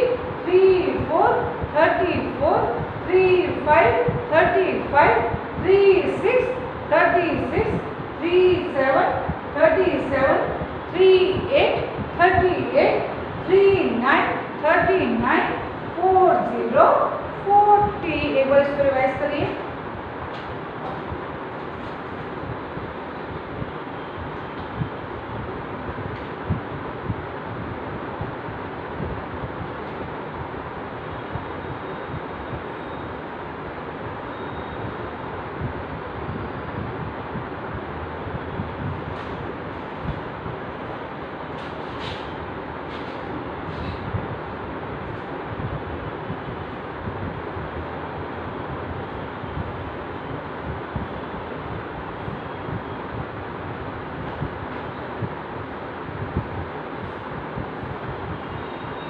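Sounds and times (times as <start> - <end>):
steady rushing noise: 0.0 - 59.0.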